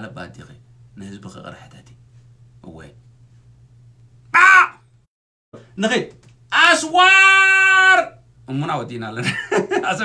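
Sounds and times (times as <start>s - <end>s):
steady low hum: 0.0s - 10.0s
man shouting: 4.3s - 4.8s, 6.5s - 8.2s.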